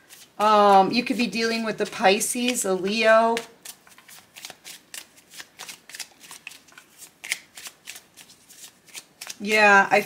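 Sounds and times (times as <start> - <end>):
cards being shuffled: 0.1 - 1.2, 2.1 - 9.6.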